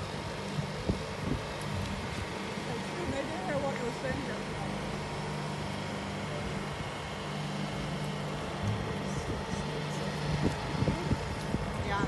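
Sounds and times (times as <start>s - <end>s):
cooling unit humming: 0.0s - 12.0s
faint voices: 8.4s - 12.0s.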